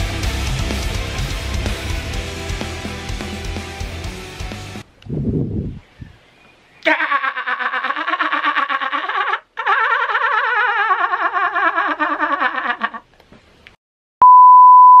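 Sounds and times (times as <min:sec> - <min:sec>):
steady test-tone beep: 0:14.2 - 0:15.0.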